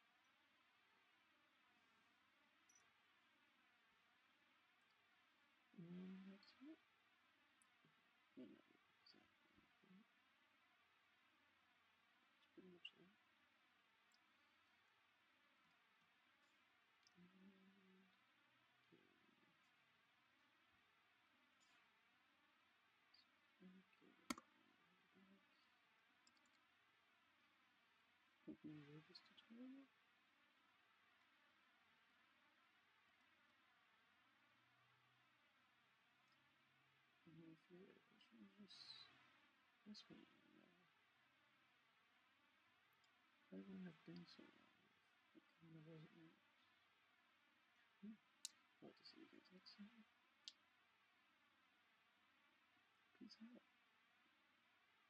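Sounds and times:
faint low hum: 0.0 - 55.0
faint low murmuring voice: 5.7 - 6.8, 8.3 - 10.1, 12.4 - 13.2, 28.5 - 29.9, 37.3 - 39.2, 39.9 - 40.9, 43.5 - 44.7, 48.8 - 50.1, 53.2 - 53.7.

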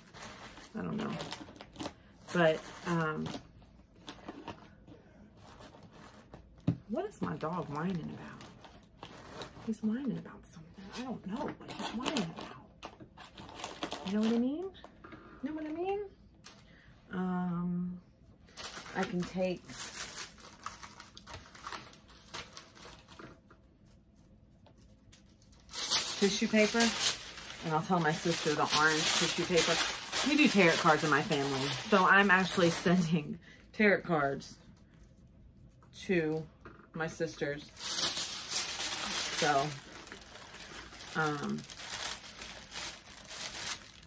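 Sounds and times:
items rustling in cardboard box: 0.0 - 4.7, 7.4 - 9.8, 18.6 - 23.3, 25.5 - 33.2, 37.7 - 44.0.

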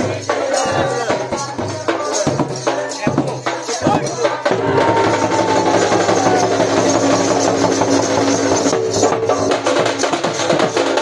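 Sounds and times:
barrel drum beating: 0.0 - 11.0.

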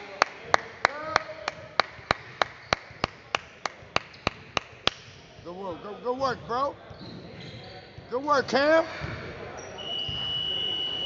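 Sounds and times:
rhythmic hand clapping: 0.0 - 5.1.

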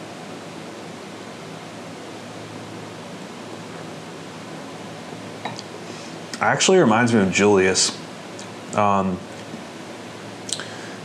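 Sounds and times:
steady room tone hiss: 0.0 - 11.0.

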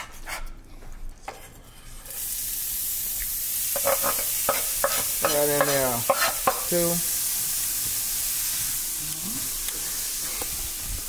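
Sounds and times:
vegetables sizzling in oil: 2.0 - 11.0.

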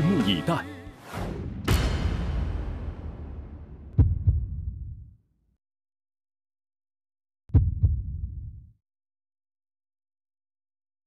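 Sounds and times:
low rumble: 1.2 - 5.2
deep booming thuds: 1.4 - 5.1, 7.5 - 8.6.

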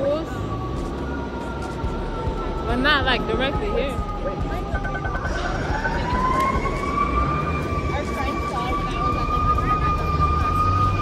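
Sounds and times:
emergency vehicle siren wailing: 0.0 - 11.0
street traffic noise: 0.0 - 11.0.

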